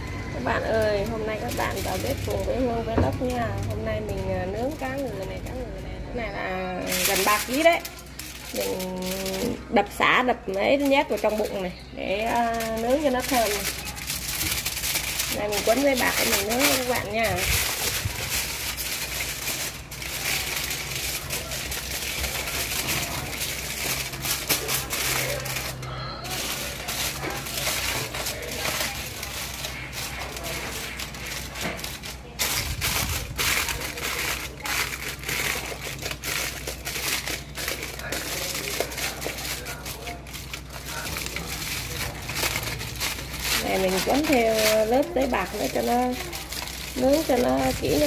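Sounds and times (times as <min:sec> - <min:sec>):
aluminium foil crinkling: 0:00.0 - 0:48.0.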